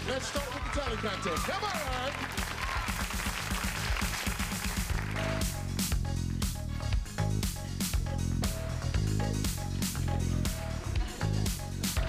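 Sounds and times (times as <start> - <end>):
audience applauding: 0.0 - 5.6
upbeat stage music: 0.0 - 12.0.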